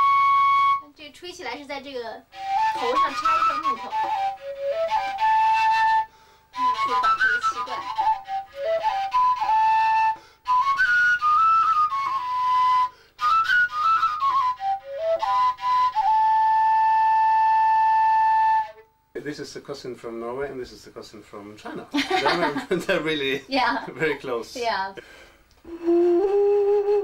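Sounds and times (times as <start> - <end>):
overtone flute playing: 0.0 - 1.0, 2.3 - 19.1, 25.7 - 27.0.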